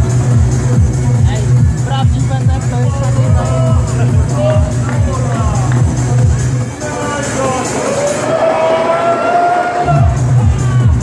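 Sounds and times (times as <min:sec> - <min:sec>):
crowd voices talking: 0:00.0 - 0:11.0
techno over sound system: 0:00.0 - 0:11.0.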